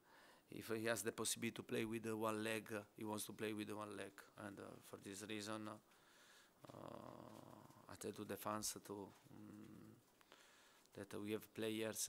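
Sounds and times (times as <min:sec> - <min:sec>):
man speaking: 0:00.5 - 0:05.9, 0:06.6 - 0:10.0, 0:10.9 - 0:12.0
man humming hesitantly: 0:06.6 - 0:08.0, 0:09.1 - 0:10.0.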